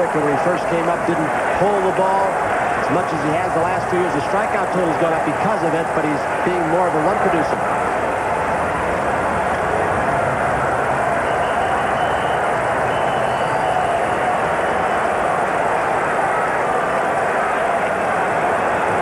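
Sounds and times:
large baseball crowd noise: 0.0s - 19.0s.

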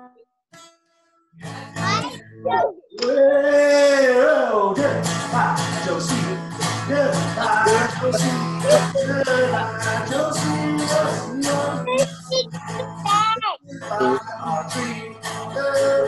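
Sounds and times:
guitar strummed: 0.5s - 16.0s
voices singing children's song: 1.4s - 16.0s.

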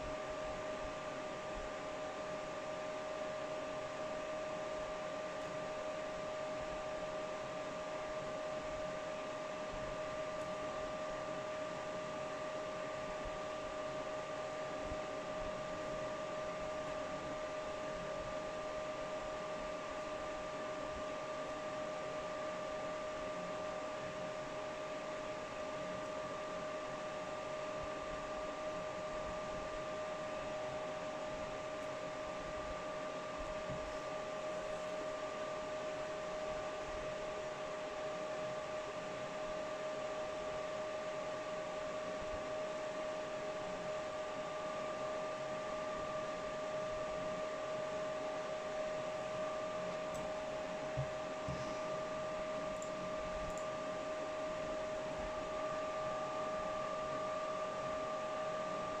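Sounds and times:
cooling fans whirring: 0.0s - 59.0s.

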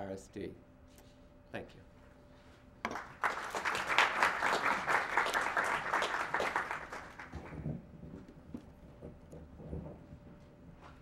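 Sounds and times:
applause: 2.9s - 7.8s.

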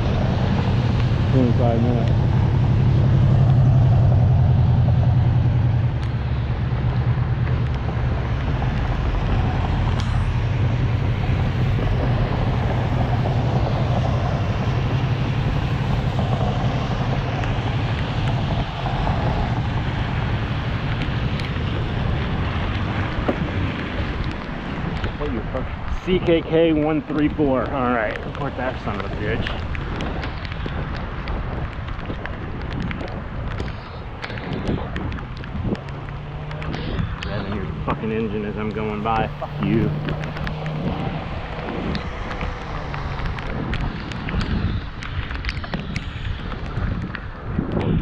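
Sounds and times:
car engine noise: 0.0s - 48.0s
tyres hissing on wet road: 0.0s - 48.0s
wind rushing on microphone: 0.0s - 48.0s.

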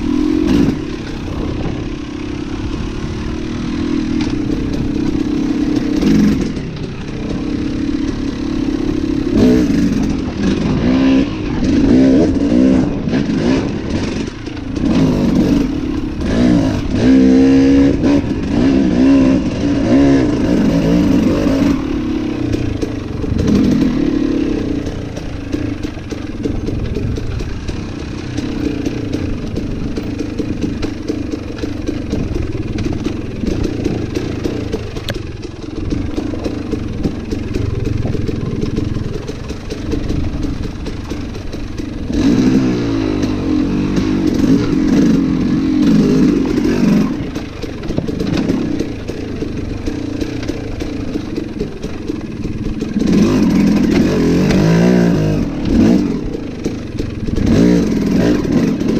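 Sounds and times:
dirt bike engine revving: 0.0s - 58.9s.

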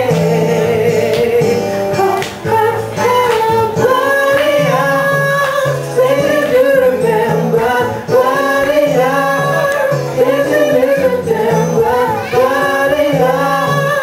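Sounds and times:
bass line: 0.0s - 14.0s
person singing: 0.0s - 14.0s.

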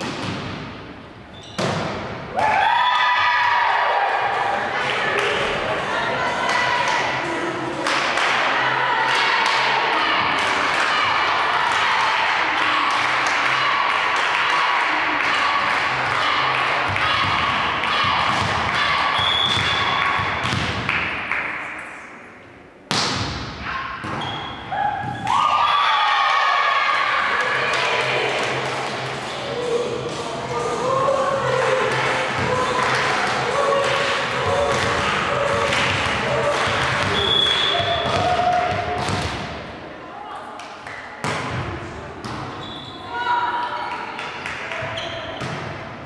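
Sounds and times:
players shouting and chattering: 1.3s - 20.5s, 23.6s - 46.0s
volleyball struck and bouncing: 1.5s - 2.1s, 16.9s - 21.2s, 22.9s - 25.3s, 34.7s - 39.6s.

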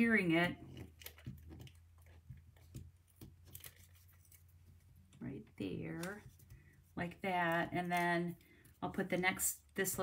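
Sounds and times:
cardstock clicks and rustles: 0.6s - 5.2s.

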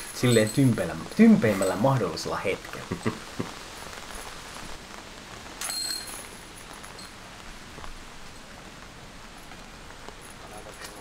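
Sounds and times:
metal chains jingling: 0.0s - 1.9s, 5.6s - 7.2s
rain hissing: 0.0s - 11.0s.

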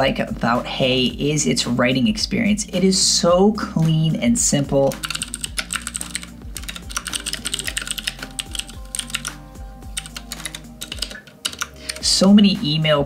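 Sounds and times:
quiet background music: 0.0s - 13.0s
keyboard key clicks: 10.0s - 12.1s.

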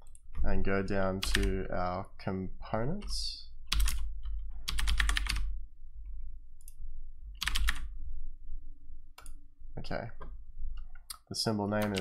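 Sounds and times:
steady low hum: 0.0s - 12.0s
keyboard keys clacking: 11.8s - 12.0s.

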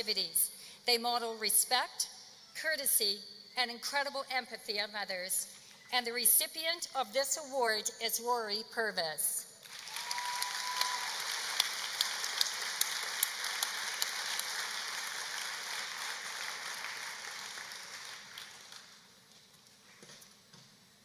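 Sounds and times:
audience applauding: 9.7s - 19.1s.

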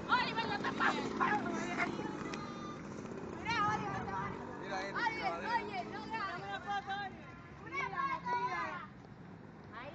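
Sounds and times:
young people talking: 0.0s - 9.1s.

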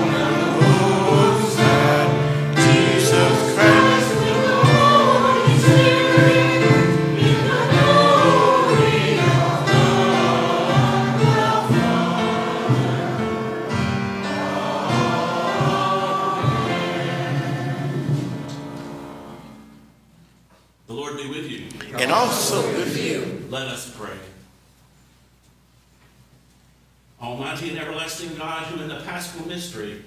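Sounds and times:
congregation singing a hymn: 0.0s - 19.7s, 21.8s - 23.5s.

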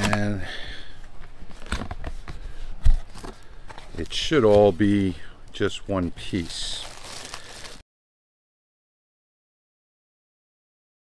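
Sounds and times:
cardboard scraping and rustling: 1.2s - 5.0s.

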